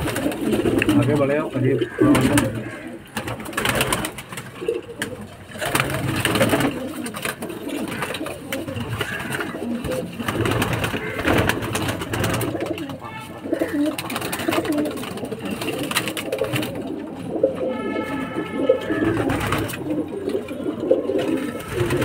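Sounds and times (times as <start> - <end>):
pigeons cooing: 0.0 - 22.0.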